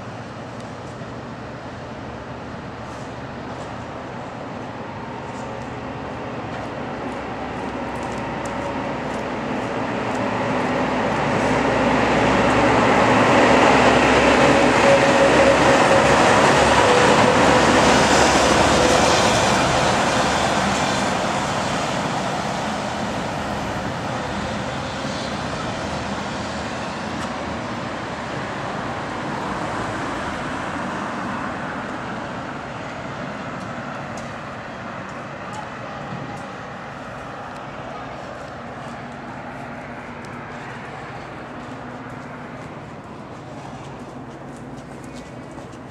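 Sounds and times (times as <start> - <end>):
passing vehicle: 5.3 - 45.9.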